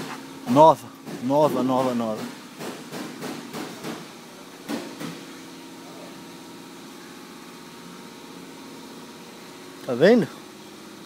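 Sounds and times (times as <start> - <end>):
mechanical motor hum: 0.0 - 11.0.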